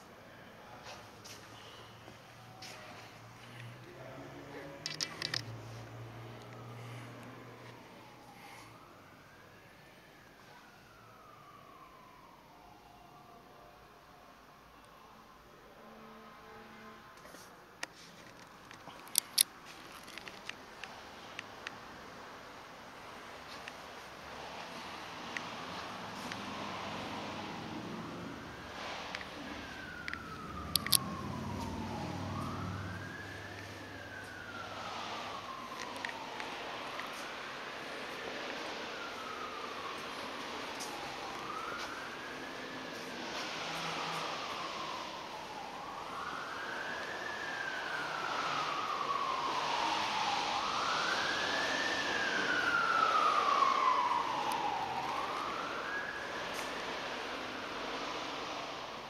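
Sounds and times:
siren wailing: 0.0s - 59.0s.

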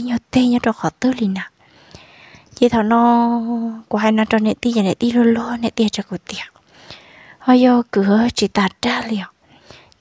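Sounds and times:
person telling a story: 0.0s - 1.6s, 2.5s - 6.6s, 7.4s - 9.4s.

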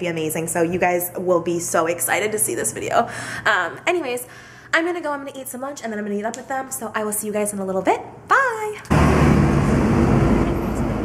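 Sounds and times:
city street traffic: 8.9s - 11.0s
vehicle engine humming nearby: 8.9s - 11.0s.

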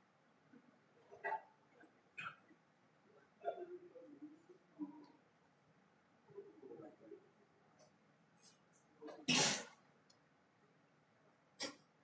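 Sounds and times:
person sneezing: 9.3s - 9.7s.

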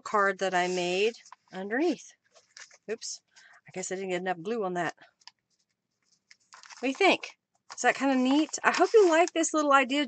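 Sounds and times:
paper rustling: 2.3s - 3.0s, 5.4s - 10.0s.

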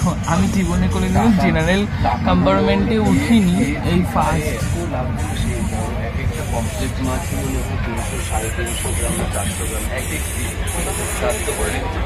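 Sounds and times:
passengers' voices: 0.0s - 12.0s.

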